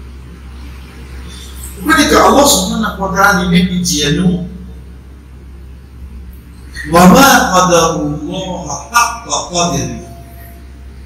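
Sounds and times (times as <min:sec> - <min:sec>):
steady low hum: 0:00.0 - 0:11.0
man speaking: 0:01.8 - 0:04.7, 0:06.7 - 0:10.2.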